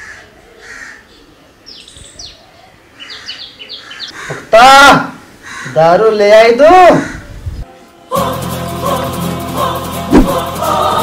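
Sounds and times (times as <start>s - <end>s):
birds chirping: 0.0s - 4.6s.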